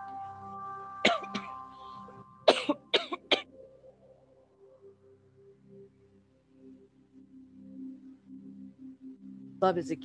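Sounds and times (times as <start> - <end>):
soft music with sustained tones: 0.0 - 10.0
woman coughing: 1.0 - 1.6, 2.4 - 3.5.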